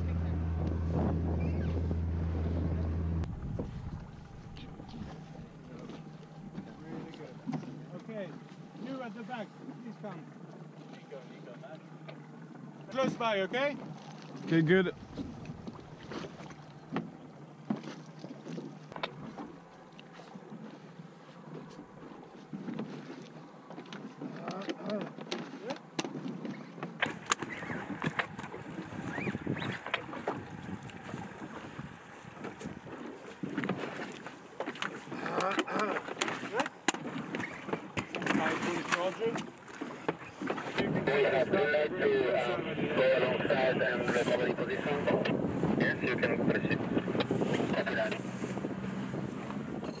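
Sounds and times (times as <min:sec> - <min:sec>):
wind on microphone: 0:00.0 - 0:05.6, 0:14.9 - 0:16.5, 0:27.1 - 0:34.2, 0:40.5 - 0:50.0
boat noise: 0:00.0 - 0:50.0
wind at sea: 0:00.0 - 0:50.0.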